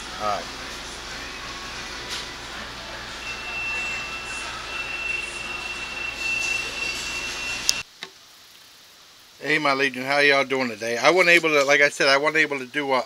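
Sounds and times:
steady high-pitched tone: 1.1 - 7.8.

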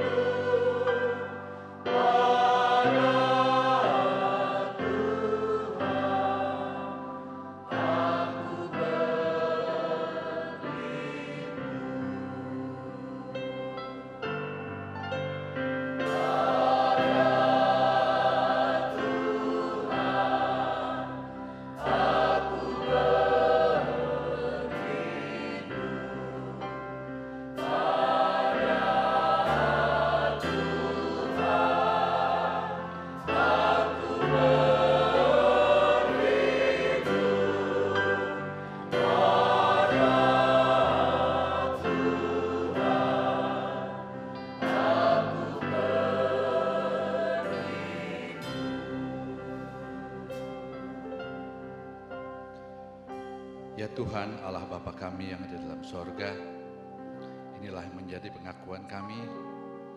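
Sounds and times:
mixed choir singing: 0.0 - 14.5, 15.6 - 51.8
church band playing: 0.0 - 54.6.

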